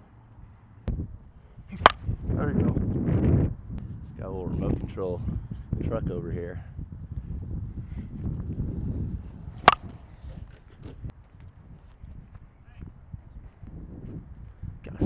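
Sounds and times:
softball bat striking ball: 1.7 - 2.2, 9.5 - 10.1.

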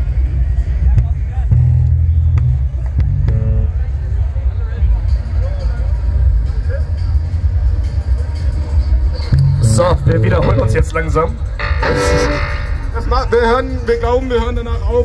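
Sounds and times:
faint crowd voices: 0.0 - 15.0
electric bass low notes: 1.0 - 3.9, 9.3 - 14.0
low rumble: 9.4 - 14.8
short instrument notes: 11.6 - 13.6.

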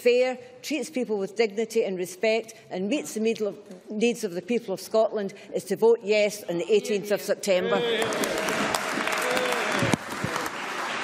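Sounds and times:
applause: 7.8 - 11.0.

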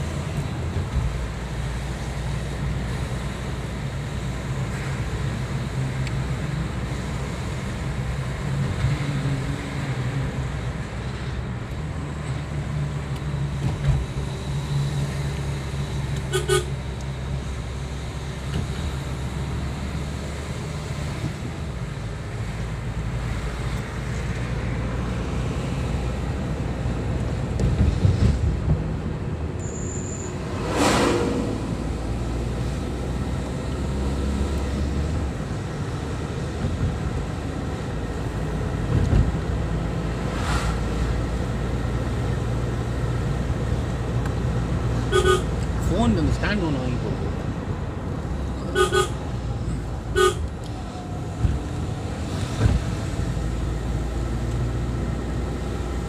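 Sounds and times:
car engine and road noise: 0.0 - 56.0
car horn: 16.3 - 16.7, 45.1 - 45.5, 48.7 - 49.2, 50.1 - 50.5.

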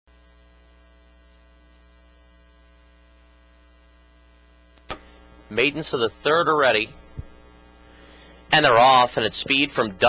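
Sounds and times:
faint electrical mains hum: 0.1 - 10.0.

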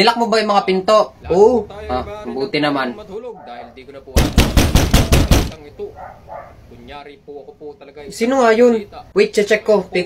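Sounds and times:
rapid knocking on door: 4.2 - 5.6.

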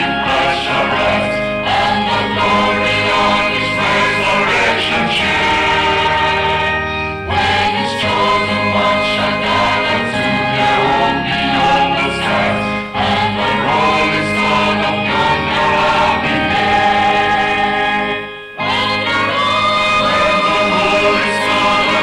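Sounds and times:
choir singing in harmony: 0.0 - 22.0.

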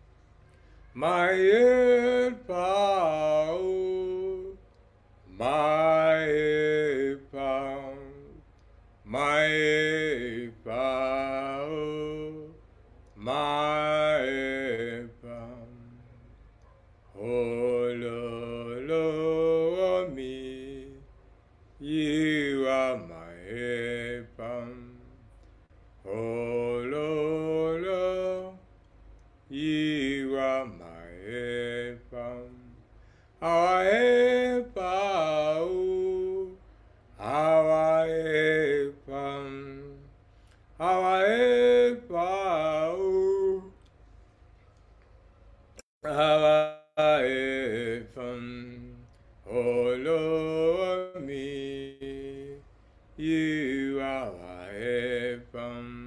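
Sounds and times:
man singing unaccompanied chant: 0.9 - 4.6, 5.2 - 16.4, 17.1 - 21.1, 21.8 - 25.3, 26.0 - 28.7, 29.5 - 43.9, 46.0 - 56.0.

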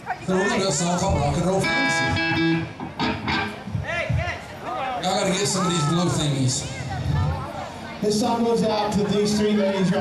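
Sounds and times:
man speaking into a microphone: 0.2 - 2.2, 3.8 - 6.7, 8.0 - 10.0.

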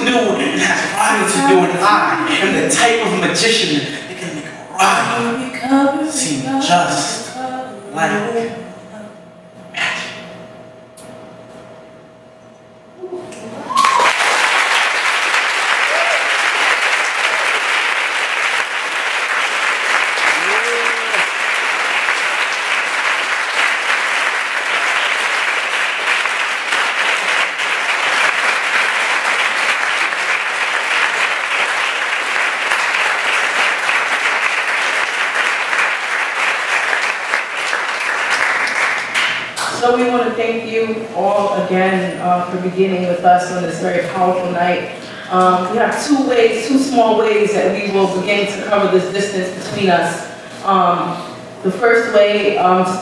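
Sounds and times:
crowd cheering: 13.5 - 39.5
audience clapping: 13.7 - 40.1.

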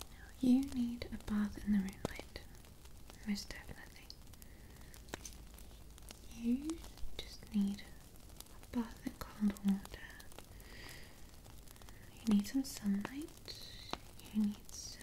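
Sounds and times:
woman whispering: 0.0 - 2.6, 3.2 - 4.2, 6.2 - 10.4, 11.9 - 15.0.

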